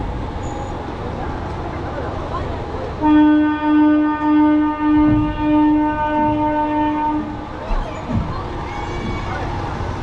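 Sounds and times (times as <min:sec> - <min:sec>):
train horn blasts: 0:03.0 - 0:07.4.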